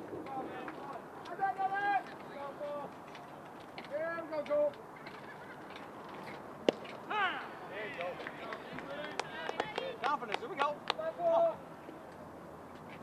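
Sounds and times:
baseball popping into mitt: 0:06.6 - 0:07.0.

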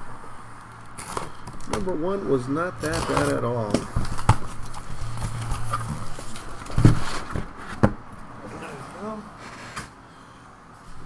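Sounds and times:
cardboard boxes being unpacked: 0:01.0 - 0:01.9, 0:02.8 - 0:09.9.

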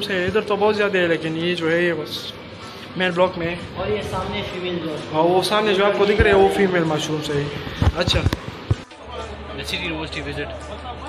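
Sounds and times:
man's voice: 0:03.0 - 0:08.4.

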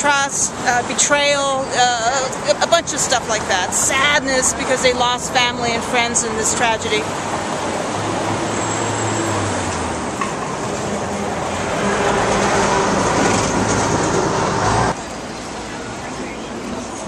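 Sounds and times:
city traffic with engine hum: 0:00.0 - 0:17.0.

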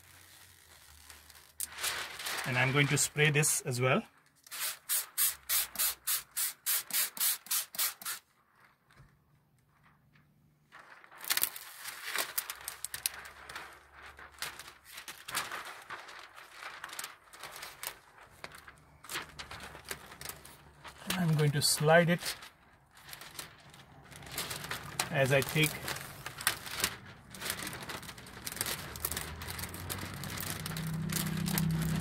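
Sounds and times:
plastic film crinkling and rustling: 0:00.0 - 0:06.6, 0:08.1 - 0:32.0
spray bottle squirting: 0:04.4 - 0:08.2.

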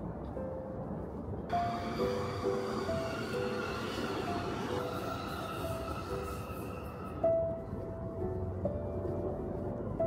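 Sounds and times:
electric train rumbling past: 0:00.0 - 0:10.0
music with slow sustained notes: 0:00.0 - 0:10.0.

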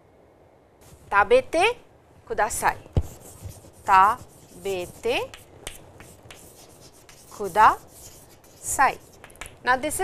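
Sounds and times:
chalk writing on chalkboard: 0:03.0 - 0:09.5.

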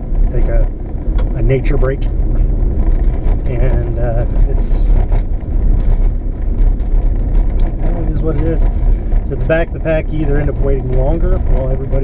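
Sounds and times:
light rattles and knocks: 0:00.0 - 0:12.0
tyres and drivetrain rumble: 0:00.0 - 0:12.0.

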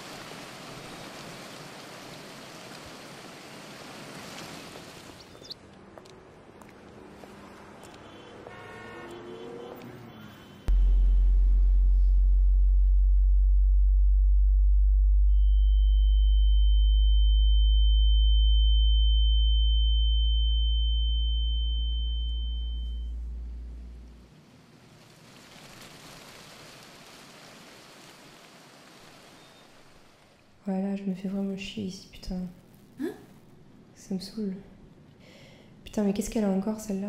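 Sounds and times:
deep steady hum: 0:10.7 - 0:24.3.

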